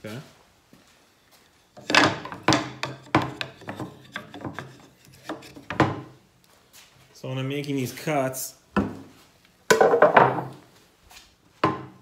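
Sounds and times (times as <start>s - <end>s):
wooden knocks and rubs: 1.7s - 6.1s.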